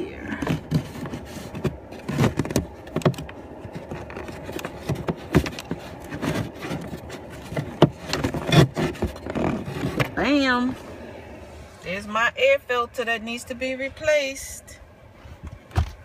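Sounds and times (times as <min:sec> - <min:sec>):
plastic scraping: 0:00.3 - 0:10.2.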